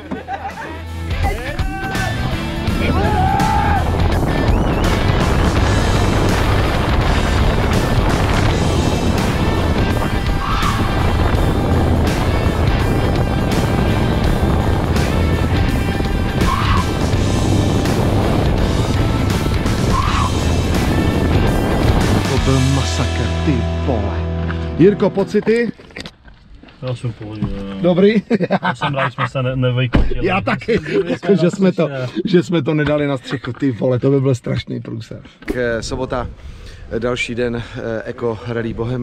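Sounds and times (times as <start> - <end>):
background music: 0.0 - 25.8
wind and tyre noise: 2.1 - 22.8, 35.6 - 39.0
tyre squeals: 16.4 - 17.0, 19.9 - 20.4.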